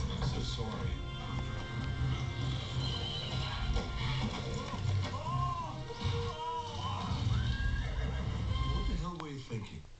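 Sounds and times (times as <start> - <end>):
music playing: 0.0 - 9.2.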